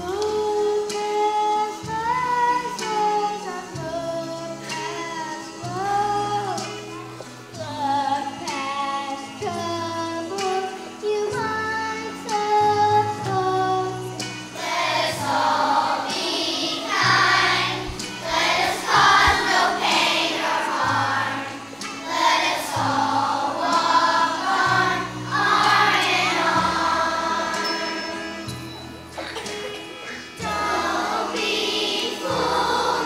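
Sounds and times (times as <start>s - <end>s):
children's choir singing: 0.0s - 33.0s
instrumental accompaniment: 13.4s - 33.0s.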